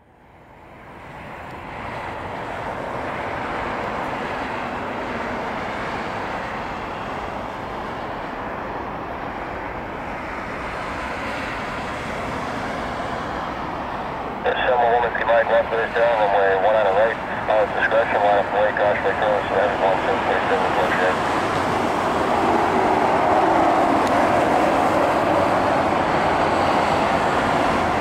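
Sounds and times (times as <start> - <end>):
jet engines roaring: 0.4 - 28.0
man speaking: 14.4 - 21.2.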